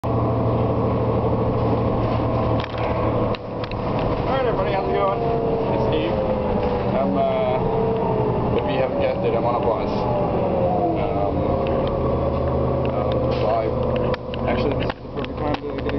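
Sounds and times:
bus engine drone: 0.0 - 15.9
road noise: 0.0 - 15.9
rattles and knocks: 2.4 - 4.4.

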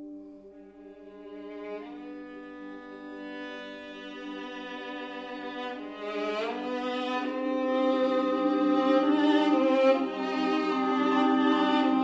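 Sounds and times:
violin bowed notes: 0.0 - 12.0.

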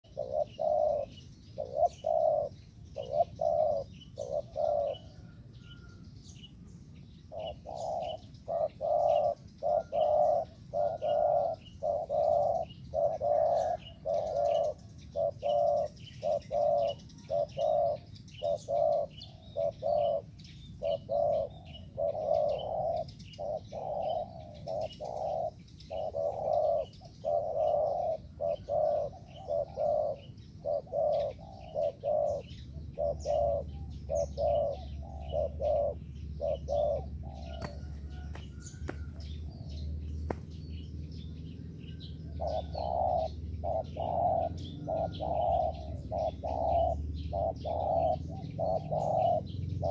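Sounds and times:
dove cooing: 0.0 - 6.0, 7.2 - 40.5, 41.1 - 49.9
small birds chirping: 0.0 - 49.9.

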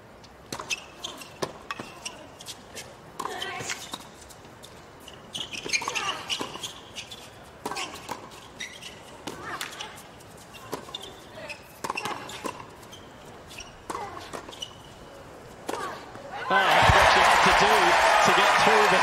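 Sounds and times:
racket hitting tennis ball: 0.5 - 2.2, 7.6 - 8.4, 9.2 - 9.8, 11.8 - 12.8, 13.8 - 14.6, 15.6 - 16.0.

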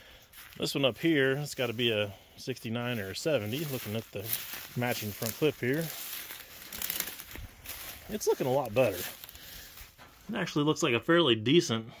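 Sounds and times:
footsteps through dry grass: 0.0 - 10.6.

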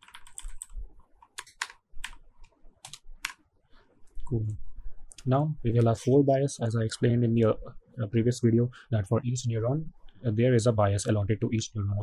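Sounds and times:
keyboard keystrokes: 0.0 - 0.7, 1.3 - 2.2.

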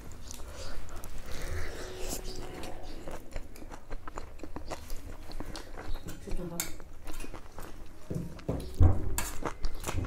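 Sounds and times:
person chewing with mouth open: 0.0 - 10.0.

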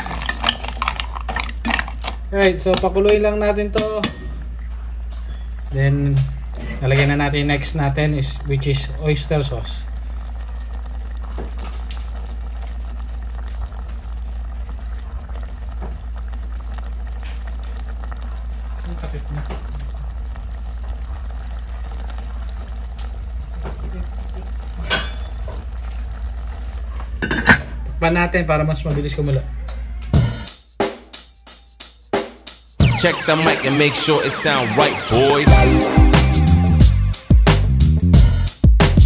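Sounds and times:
sauce bubbling in a pot: 0.0 - 28.3
metal pot lid clinks: 27.2 - 27.7.

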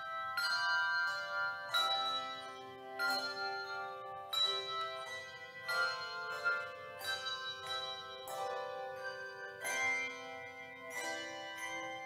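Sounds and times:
handbell choir ringing chords: 0.0 - 12.0.

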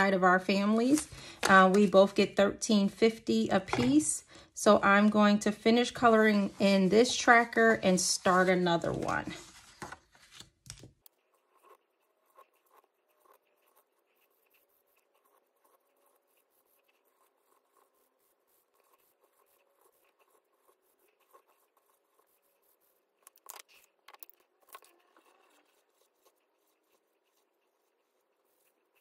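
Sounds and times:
marker scratching on paper: 0.0 - 4.1, 4.8 - 9.6, 11.1 - 29.0
paper rustling: 6.4 - 11.0.

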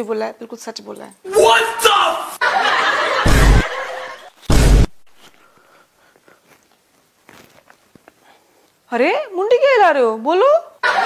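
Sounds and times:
laughter: 2.4 - 4.4, 10.8 - 11.0
loud deep burst: 3.2 - 5.2.

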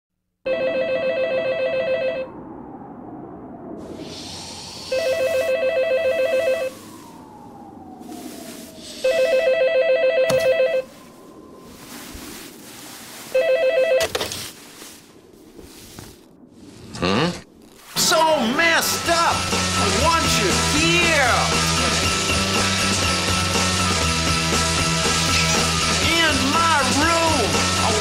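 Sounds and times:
telephone bell ringing: 0.5 - 2.3, 5.0 - 6.7, 9.0 - 10.9, 13.3 - 14.1.

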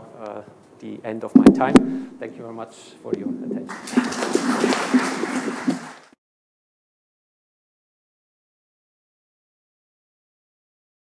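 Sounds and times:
audience applauding: 3.6 - 6.2.

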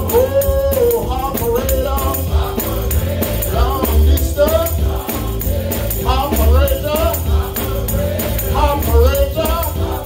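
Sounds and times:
bass and drums: 0.0 - 10.0
choir voices: 0.0 - 10.0
hand clapping: 0.0 - 10.0
man singing lead: 0.0 - 10.0
tambourine-like percussion: 0.0 - 10.0.

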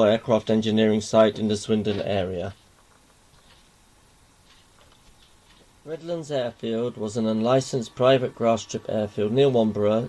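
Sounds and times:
man narrating: 0.0 - 2.6, 5.9 - 10.0
faint room hiss: 0.0 - 10.0.

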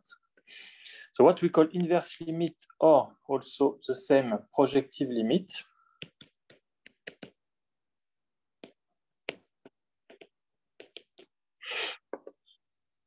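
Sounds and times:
stylus tapping on glass screen: 6.0 - 7.4, 8.6 - 11.3.

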